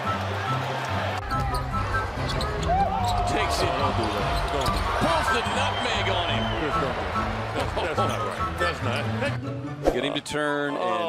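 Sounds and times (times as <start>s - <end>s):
crowd din: 0.0s - 9.6s.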